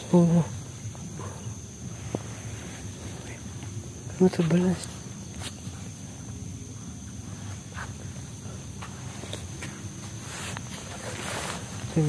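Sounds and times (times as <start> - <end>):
steady low hum: 0.0 - 12.0
rustling: 7.2 - 12.0.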